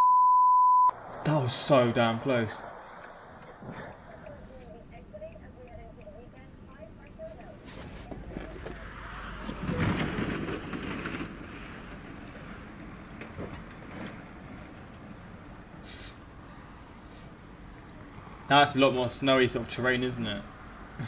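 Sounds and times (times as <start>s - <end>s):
truck skidding rushing noise: 0.9s - 4.6s, 8.0s - 17.3s.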